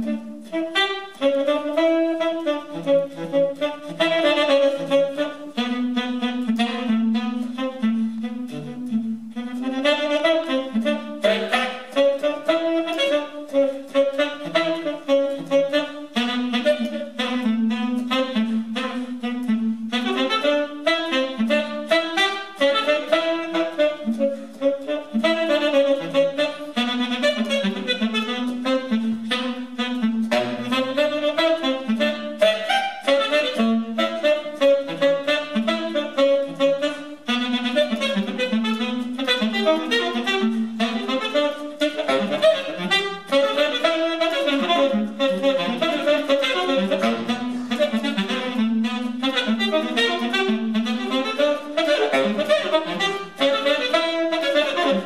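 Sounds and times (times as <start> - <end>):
tenor saxophone jazz solo: 0.0 - 55.0.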